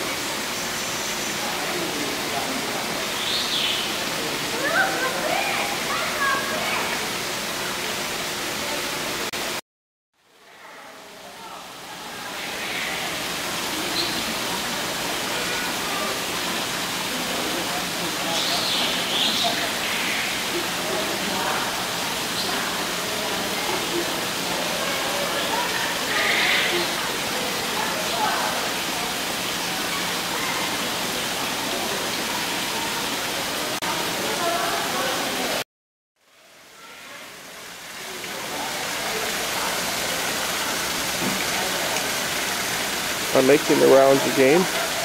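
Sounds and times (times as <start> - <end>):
faint indistinct voices: 10.3 - 35.6, 36.3 - 45.0.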